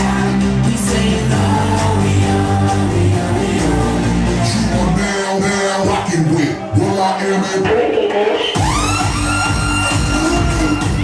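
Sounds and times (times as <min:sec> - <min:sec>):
heavy bass beat: 0:00.0 - 0:11.0.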